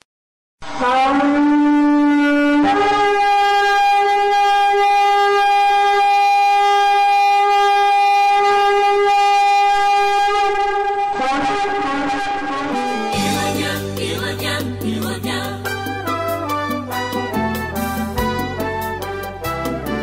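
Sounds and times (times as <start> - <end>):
horn blast: 0.6 - 20.0.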